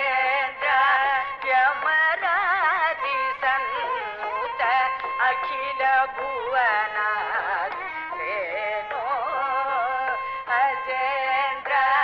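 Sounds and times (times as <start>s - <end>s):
person singing ornamented phrases: 3.2s - 12.0s.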